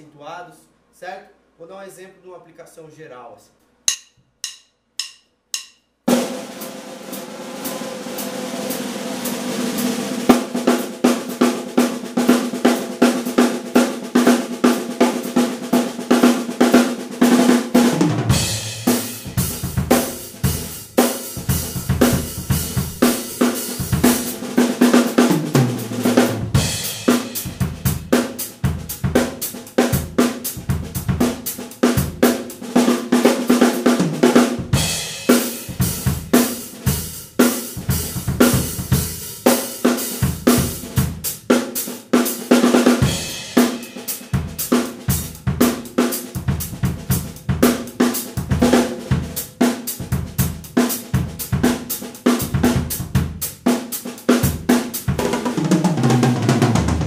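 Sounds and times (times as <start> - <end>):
acoustic drum kit playing: 3.9 - 57.0.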